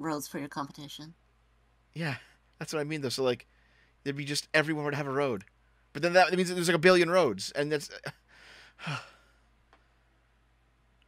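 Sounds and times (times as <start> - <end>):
person sighing: 8.4 - 9.4.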